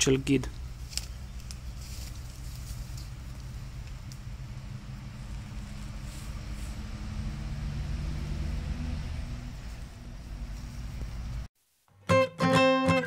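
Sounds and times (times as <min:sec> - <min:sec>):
vehicle engine rumble: 0:00.0 - 0:11.5.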